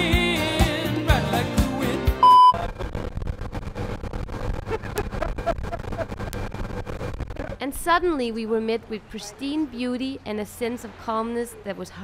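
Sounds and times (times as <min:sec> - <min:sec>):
short electronic beep: 0:02.2 - 0:02.6.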